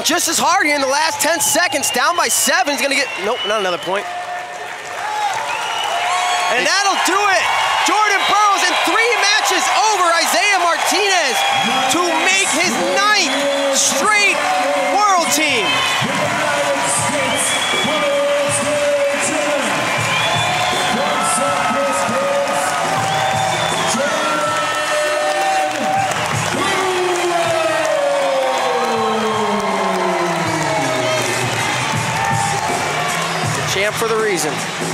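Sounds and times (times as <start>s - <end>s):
crowd cheering and whooping: 0.2s - 34.9s.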